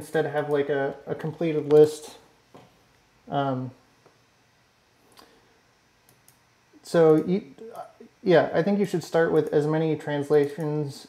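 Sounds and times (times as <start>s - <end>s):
man talking: 0.0s - 2.3s, 3.3s - 3.8s, 6.8s - 11.0s
computer mouse clicks: 6.0s - 6.4s.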